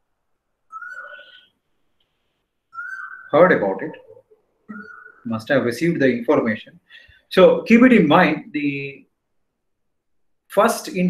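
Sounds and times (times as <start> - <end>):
short whistled call: 0.7 - 1.5, 2.8 - 3.4, 4.7 - 5.3.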